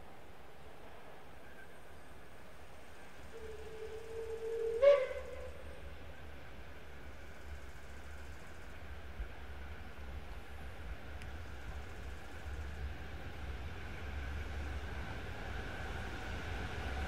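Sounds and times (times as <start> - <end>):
distant steam locomotive whistle: 3.2 - 6.2.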